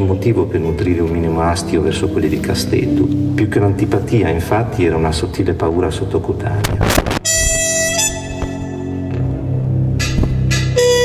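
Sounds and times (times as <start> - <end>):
jazz trumpet long notes: 7.2 - 9.2, 10.8 - 11.0.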